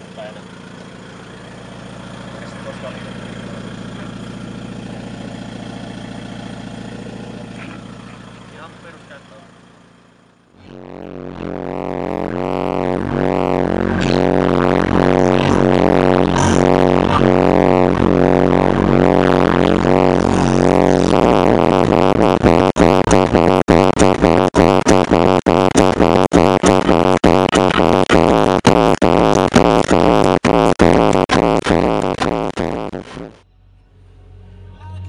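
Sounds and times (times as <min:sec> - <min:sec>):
low hum: 0:10.3 - 0:35.0
loud music with heavy bass: 0:10.5 - 0:33.4.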